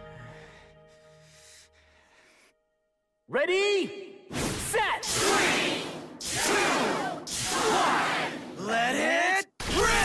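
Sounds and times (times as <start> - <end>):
people shouting countdown: 4.8 - 10.0.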